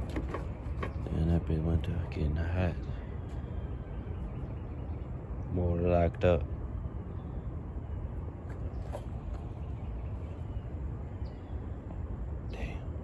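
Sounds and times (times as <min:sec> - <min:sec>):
low outdoor background rumble: 0:00.0 - 0:13.0.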